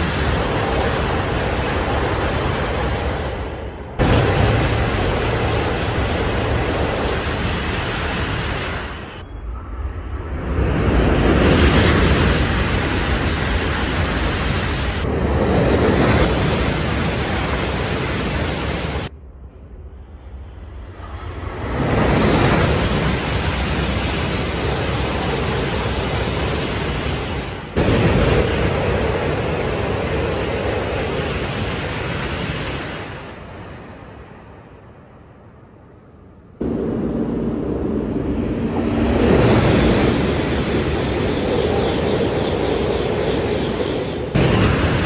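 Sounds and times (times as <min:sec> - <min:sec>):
high-speed train passing: 0:00.0 - 0:45.0.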